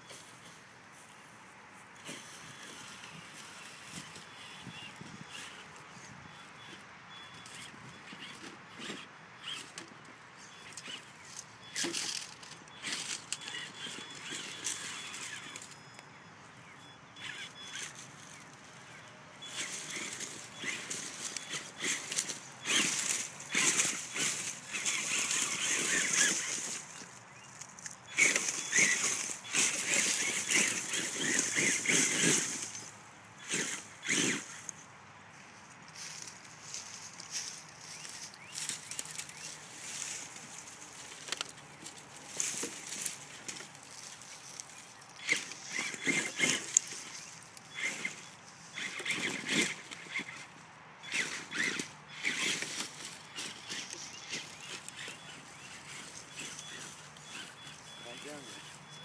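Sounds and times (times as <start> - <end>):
dry leaves crunching under tyres: 10.4 - 15.8, 17.2 - 59.0
footsteps in leaf litter: 35.4 - 49.2, 51.1 - 58.9.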